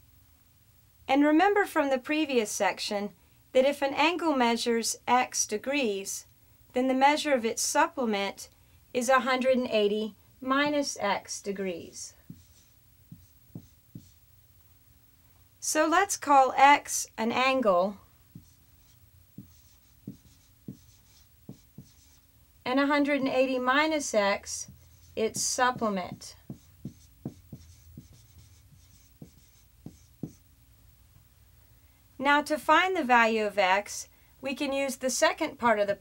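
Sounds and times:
marker writing on whiteboard: 0:12.2 - 0:14.2, 0:18.3 - 0:22.2, 0:24.4 - 0:30.4.

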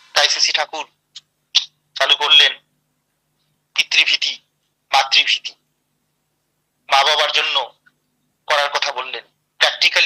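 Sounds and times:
man speaking: 0:01.6 - 0:02.7, 0:03.7 - 0:05.6, 0:06.9 - 0:07.8, 0:08.5 - 0:10.0.

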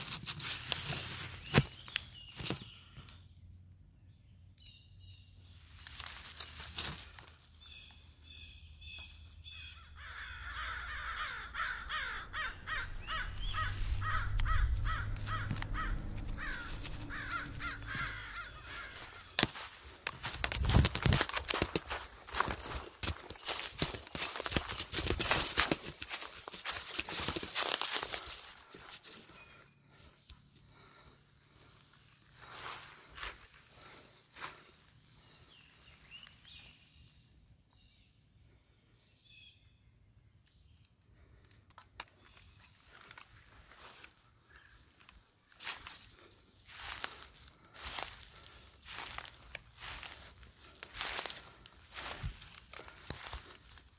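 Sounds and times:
footsteps crunching dry leaves: 0:00.0 - 0:03.0, 0:05.4 - 0:30.1, 0:30.7 - 0:37.2, 0:42.2 - 0:53.9
animal harsh calls: 0:09.8 - 0:19.5.

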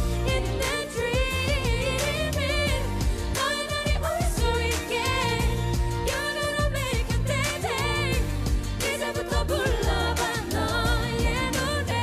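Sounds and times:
band with bass and drums: 0:00.0 - 0:12.0
woman singing: 0:00.0 - 0:12.0.

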